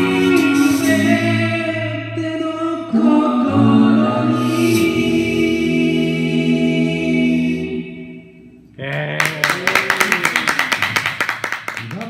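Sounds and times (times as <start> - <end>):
person speaking: 8.8 - 10.4
audience applause: 9.0 - 12.0.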